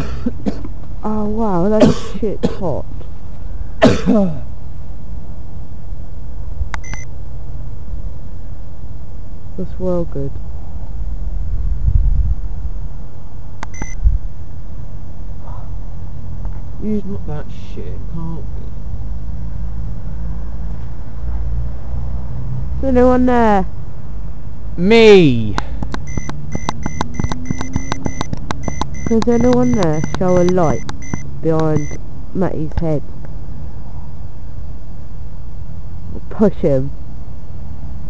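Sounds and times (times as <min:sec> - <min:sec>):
low steady hum: 0:00.0 - 0:19.8, 0:22.8 - 0:38.0
click: 0:06.7 - 0:07.1, 0:13.6 - 0:14.0
short electronic beep: 0:06.8 - 0:07.1, 0:13.7 - 0:14.0, 0:26.0 - 0:32.0
low rumbling on microphone: 0:10.8 - 0:13.0
crackling clicks: 0:25.6 - 0:32.0.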